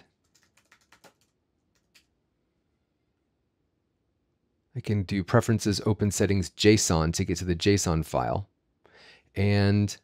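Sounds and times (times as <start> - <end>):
typing on computer keyboard: 0.0 - 2.1.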